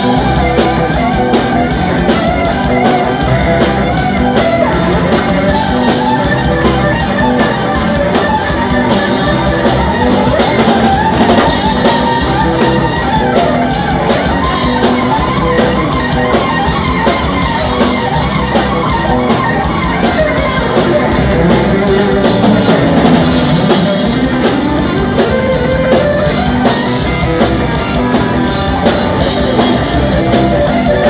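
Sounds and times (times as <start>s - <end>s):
drum kit: 0.0s - 31.0s
electric guitars: 0.0s - 31.0s.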